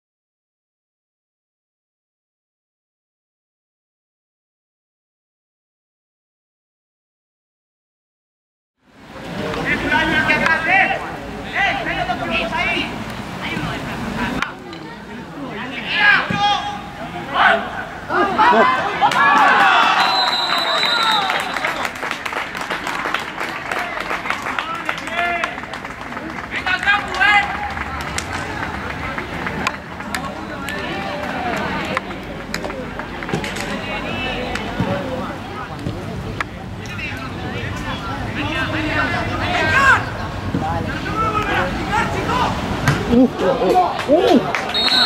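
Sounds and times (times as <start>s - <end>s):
people shouting and cheering: 15.6s - 36.1s, 36.9s - 45.0s
scattered clapping: 19.0s - 33.8s, 43.6s - 45.0s
high whistle note: 44.7s - 45.0s.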